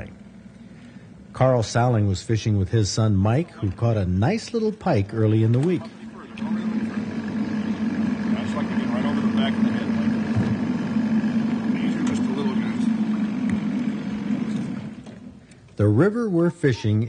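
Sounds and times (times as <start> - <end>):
outboard motor running: 5.0 - 15.9
faint voices: 5.3 - 14.0.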